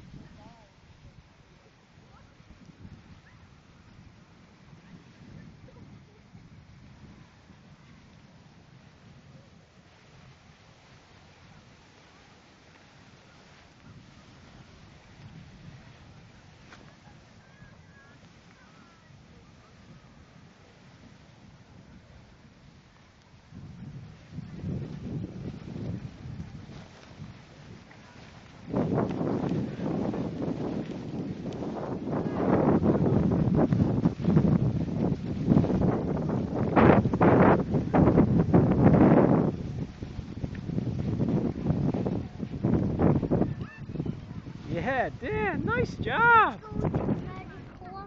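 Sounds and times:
skis scraping over snow: 0.0 - 48.0
wind buffeting microphone: 0.0 - 48.0.

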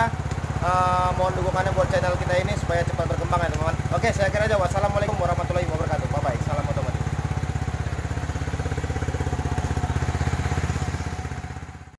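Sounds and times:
engine knocking: 0.0 - 11.9
motorcycle engine idling: 0.0 - 11.9.

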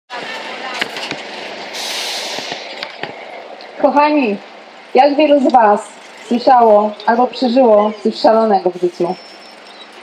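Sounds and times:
distant voices: 0.1 - 10.0
traffic: 0.1 - 10.0
short hiss: 1.7 - 2.8.

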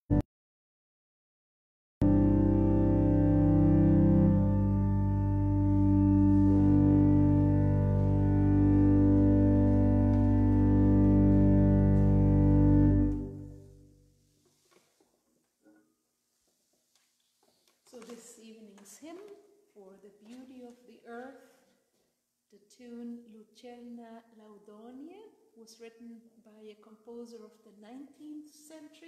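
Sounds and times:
pipe organ chords: 2.0 - 14.0.

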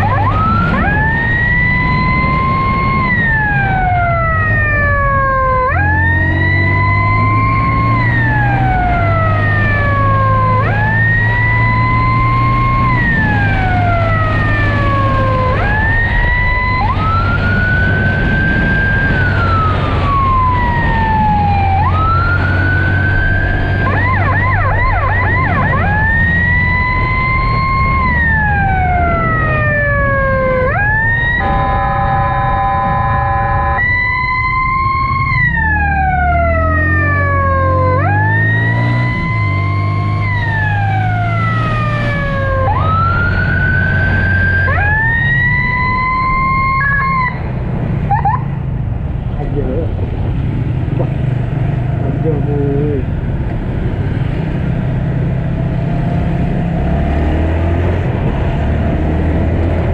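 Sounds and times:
electronic siren wailing: 0.0 - 48.8
horn blast: 31.4 - 33.8.

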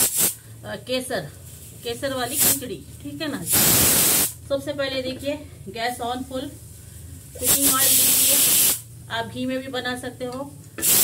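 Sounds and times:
gas stove burner hissing: 0.0 - 0.5, 2.0 - 2.7, 3.3 - 4.4, 7.2 - 8.9, 10.8 - 11.0.

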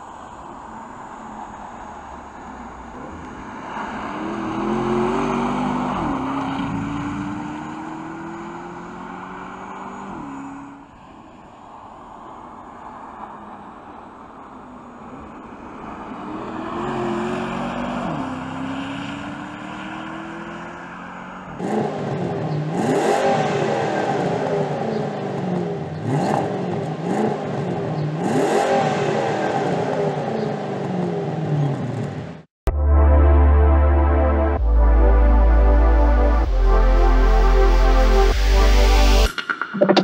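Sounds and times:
car engine accelerating hard: 2.1 - 10.8, 16.1 - 39.3.

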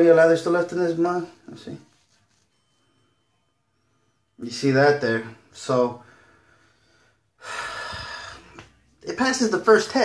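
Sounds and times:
man breathing: 6.0 - 8.7.

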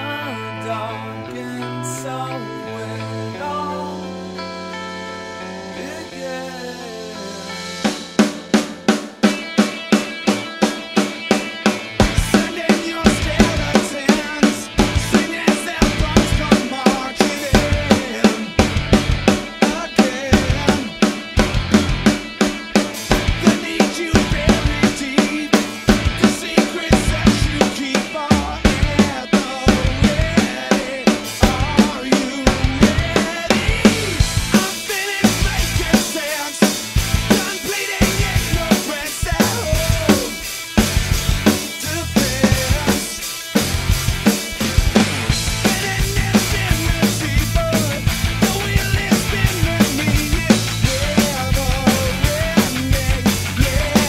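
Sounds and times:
rock song with guitar: 0.0 - 54.0
drum kit playing: 3.4 - 54.0.

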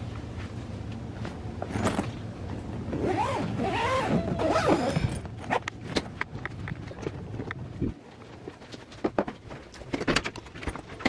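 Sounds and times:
suitcase zipper being pulled: 2.9 - 5.6.

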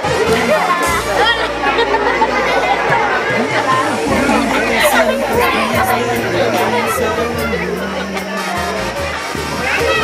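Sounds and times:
hubbub of voices: 0.0 - 10.0.

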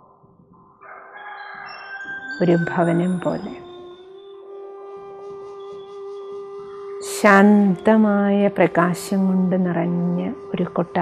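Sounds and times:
chime-like tones climbing: 1.2 - 4.6
soft background music: 1.2 - 11.0.

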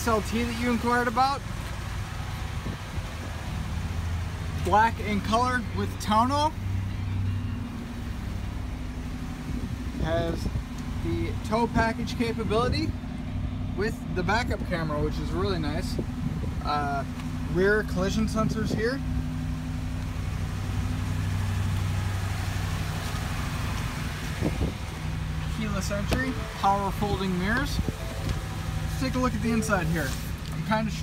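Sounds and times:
truck engine idling: 0.0 - 31.0.

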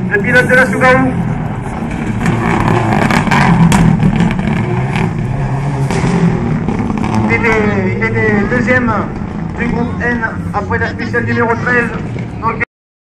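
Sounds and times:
rally car engine running hard: 0.0 - 12.6.

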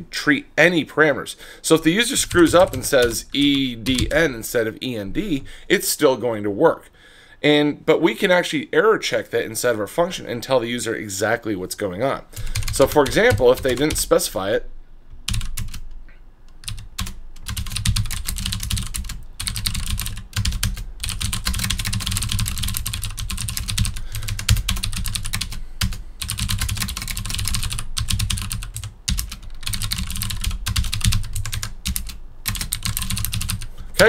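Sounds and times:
computer keyboard typing: 2.2 - 4.2, 12.4 - 14.1, 15.3 - 15.8, 16.6 - 33.7.

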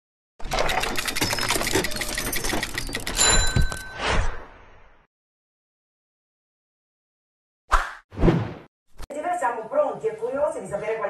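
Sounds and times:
keyboard typing clicks: 0.6 - 3.8.

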